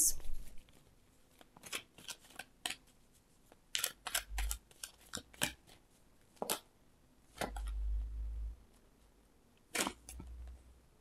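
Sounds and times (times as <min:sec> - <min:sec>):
cards being shuffled: 0:00.1 - 0:06.7.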